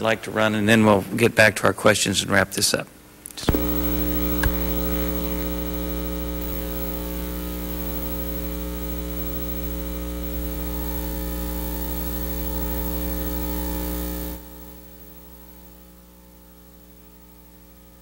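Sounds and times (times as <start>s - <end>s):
electrical mains hum: 0.0s - 18.0s.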